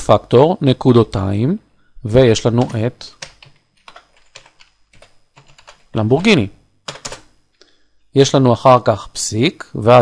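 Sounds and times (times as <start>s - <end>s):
computer keyboard typing: 2.6s - 7.3s.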